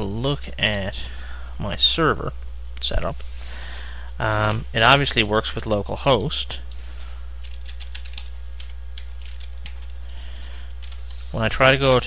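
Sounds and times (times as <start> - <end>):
steady low hum: 0.0 - 12.0
typing on computer keyboard: 7.4 - 9.9.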